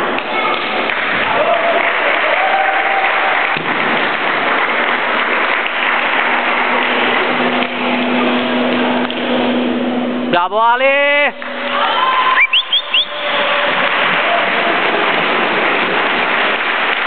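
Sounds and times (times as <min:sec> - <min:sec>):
spectators applauding: 0:00.0 - 0:09.7, 0:11.2 - 0:17.0
steady low hum: 0:03.6 - 0:17.0.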